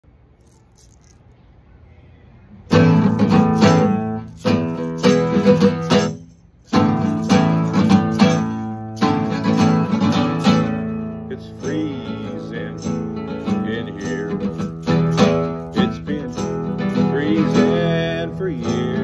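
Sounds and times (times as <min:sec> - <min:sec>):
classical guitar strummed in chords: 0:02.7 - 0:19.0.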